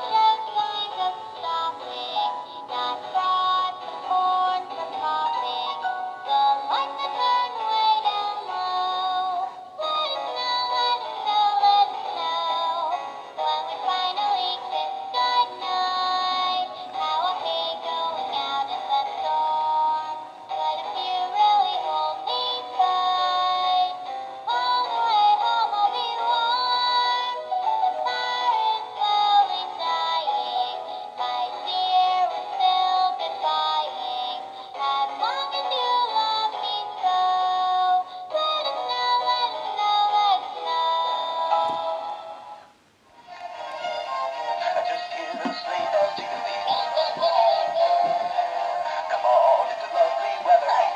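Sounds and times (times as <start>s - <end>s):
toy speaker playing song: 43.2s - 50.9s.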